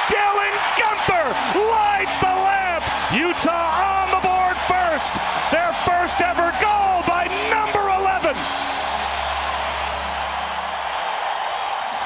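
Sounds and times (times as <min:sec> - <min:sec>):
crowd cheering and yelling: 0:00.0 - 0:12.0.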